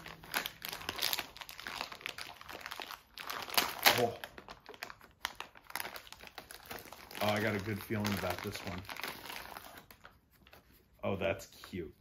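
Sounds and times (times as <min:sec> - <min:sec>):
plastic packet crinkling: 0:00.0 - 0:10.2.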